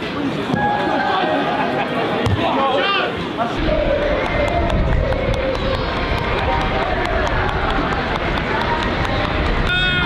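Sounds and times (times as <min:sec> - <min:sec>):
indistinct voices: 0:00.0 - 0:10.0
wind rumbling on microphone: 0:03.6 - 0:10.0
hand claps: 0:04.2 - 0:09.7.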